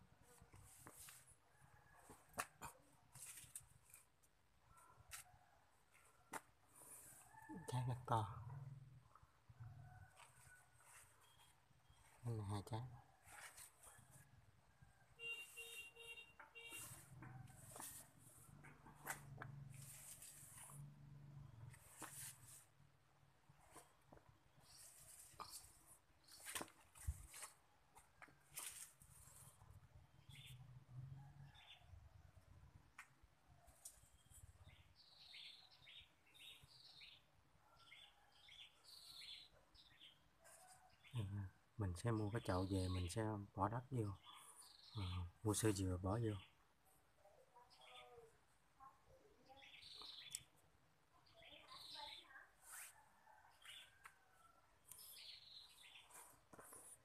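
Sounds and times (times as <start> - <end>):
bird chirping: 11.2 - 12.6, 30.1 - 30.7, 34.0 - 40.3, 49.5 - 50.6, 54.9 - 56.3
rustling: 13.2 - 14.2, 15.3 - 21.1, 21.7 - 22.9, 23.5 - 29.6.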